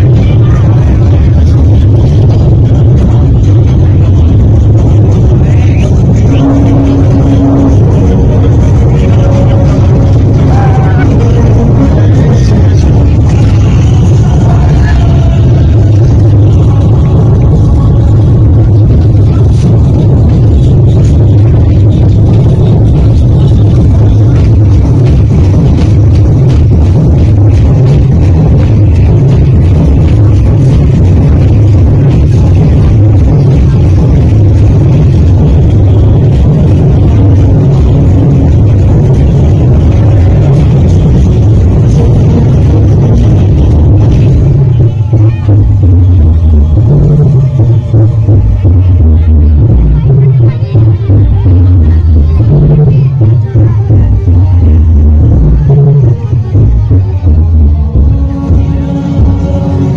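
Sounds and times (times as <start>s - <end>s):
loud bass-heavy music: 0.0s - 59.9s.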